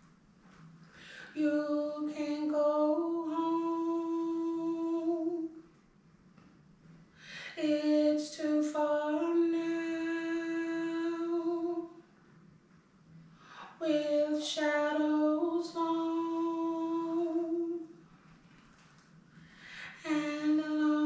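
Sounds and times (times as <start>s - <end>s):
woman singing wordless harmony: 1.0s - 5.7s, 7.3s - 12.0s, 13.5s - 18.0s, 19.5s - 21.0s.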